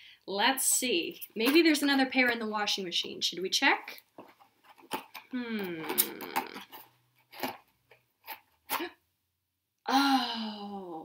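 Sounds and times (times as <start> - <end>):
cardboard cut-out rustling: 4.1 - 9.0.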